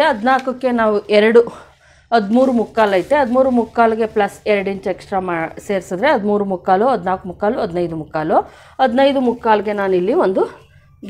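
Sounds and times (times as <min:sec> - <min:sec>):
woman speaking: 0:00.0 - 0:10.7.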